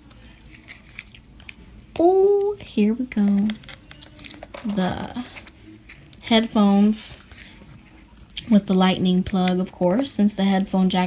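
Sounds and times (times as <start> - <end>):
cardboard and paper rustling: 0.4 - 1.2, 3.1 - 8.7.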